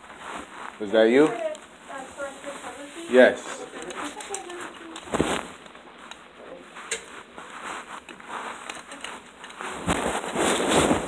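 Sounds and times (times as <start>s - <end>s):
short rustling: 0.0s - 11.0s.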